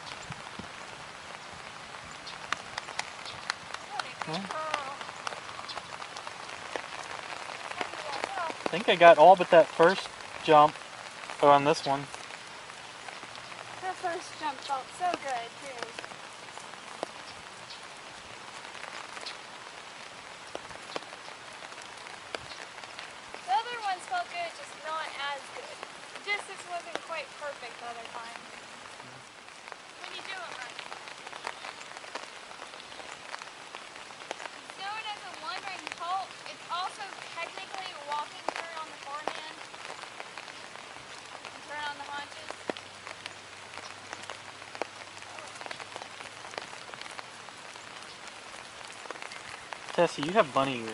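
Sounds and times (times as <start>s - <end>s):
raindrop ticks: 0.0s - 50.9s
steady light rain: 0.0s - 50.9s
person speaking: 3.9s - 5.0s.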